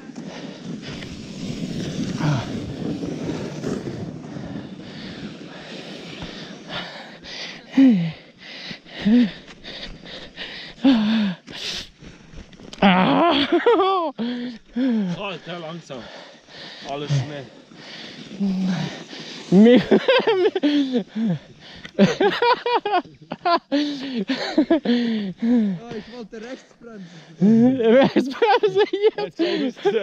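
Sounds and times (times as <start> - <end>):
sled runners scraping over snow: 0.0 - 13.6, 14.3 - 30.0.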